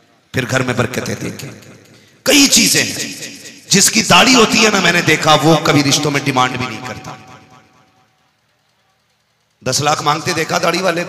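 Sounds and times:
man speaking over sound system: 0:00.3 - 0:01.5, 0:02.3 - 0:07.5, 0:09.6 - 0:11.0.

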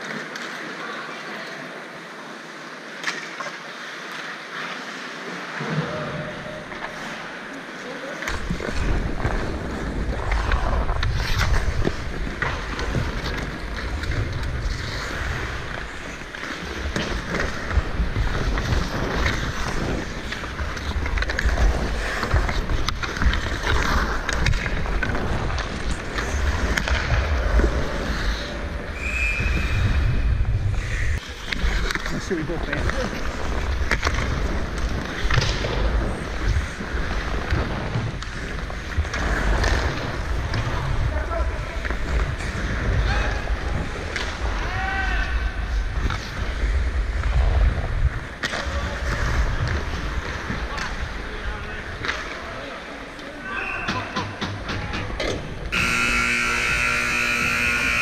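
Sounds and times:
hockey sticks and puck clacking: 0:00.0 - 0:00.8, 0:03.0 - 0:05.0, 0:08.1 - 0:29.2, 0:31.2 - 0:47.5, 0:48.3 - 0:58.0
skates scraping on ice: 0:00.0 - 0:58.0
wind rumble on microphone: 0:29.2 - 0:31.2.

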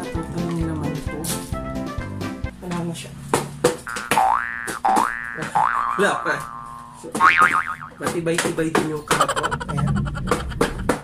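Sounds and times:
cartoon boing sound effect: 0:03.9 - 0:08.0.

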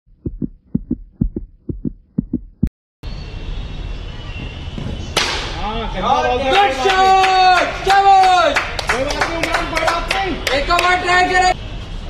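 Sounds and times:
heartbeat double thumps: 0:00.1 - 0:02.7.

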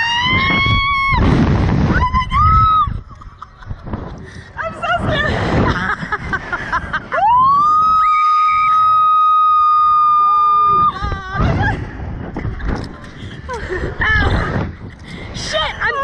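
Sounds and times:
wind rushing on microphone: 0:00.0 - 0:16.0
women laughing: 0:02.9 - 0:07.4
women screaming: 0:07.1 - 0:11.7.

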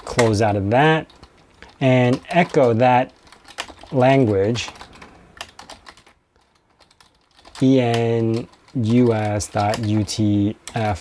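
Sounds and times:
computer keyboard typing: 0:00.0 - 0:10.9.

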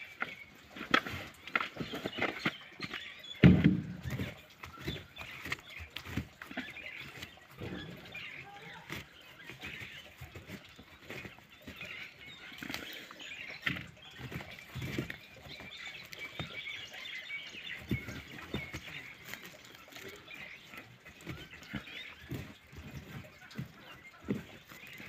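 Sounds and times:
rustling of dry stalks and plastic: 0:00.0 - 0:25.0.

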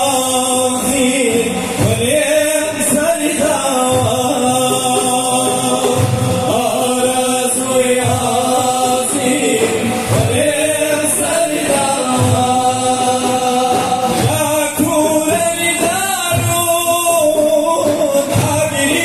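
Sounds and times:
frame drums: 0:00.0 - 0:19.0
group singing devotional chant: 0:00.0 - 0:19.0.

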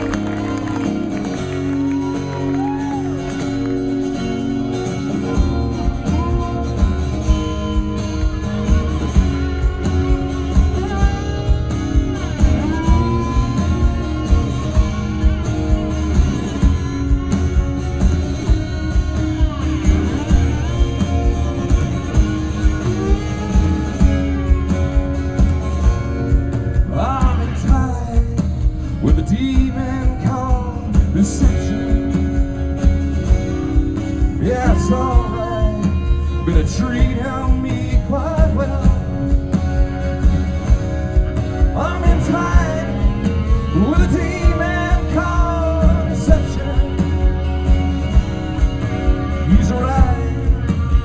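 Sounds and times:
acoustic guitar: 0:00.0 - 0:51.0
drums steady beat: 0:00.0 - 0:51.0
electric guitar: 0:00.0 - 0:51.0.

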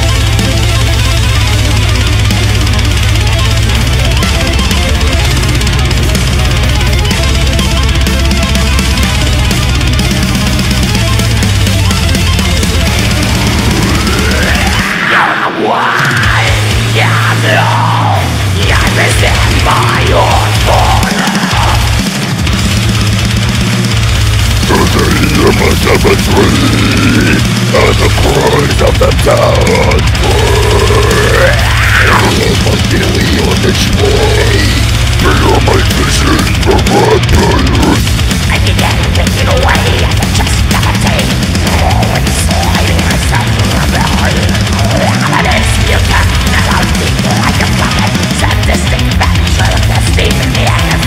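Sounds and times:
very fast drumming: 0:00.0 - 0:15.0, 0:18.2 - 0:51.0
distorted guitars: 0:00.0 - 0:51.0.

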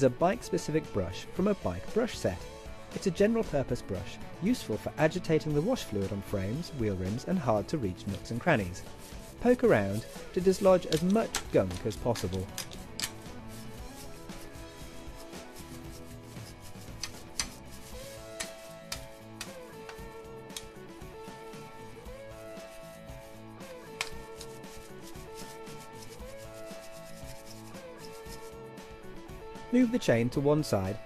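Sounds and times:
light background music: 0:00.0 - 0:31.0
brush scrubbing bicycle frame: 0:04.5 - 0:28.6.

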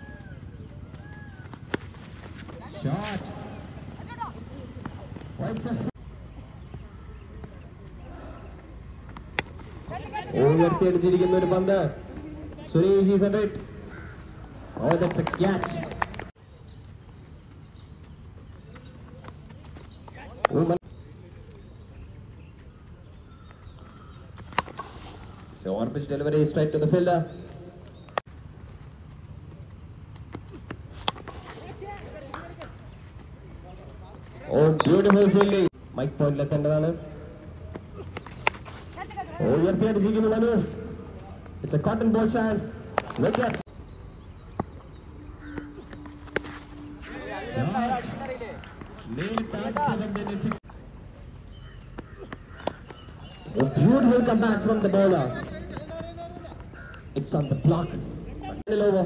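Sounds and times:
faint insects: 0:00.0 - 0:59.0
cricket bat striking ball: 0:42.9 - 0:43.6, 0:44.5 - 0:46.8, 0:52.2 - 0:54.0.

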